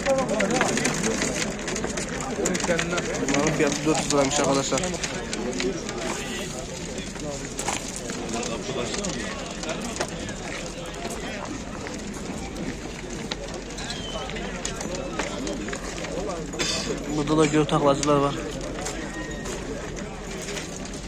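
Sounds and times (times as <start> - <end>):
background voices talking: 0.0 - 21.0.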